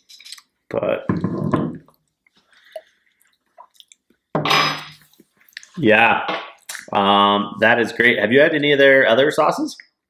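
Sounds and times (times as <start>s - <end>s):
wet lip smacks and clicks: 2.0s - 4.2s, 5.1s - 5.8s, 6.6s - 6.9s.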